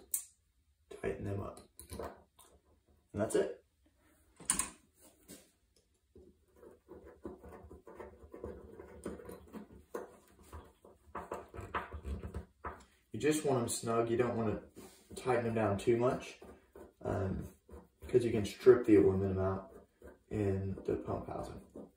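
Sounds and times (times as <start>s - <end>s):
sharp clicks: 4.4s - 4.8s.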